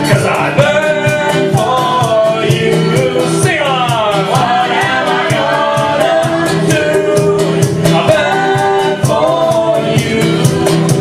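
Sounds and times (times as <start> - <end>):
acoustic guitar: 0.0 - 11.0
double bass: 0.0 - 11.0
percussion beat: 0.0 - 11.0
voices singing together: 0.0 - 11.0.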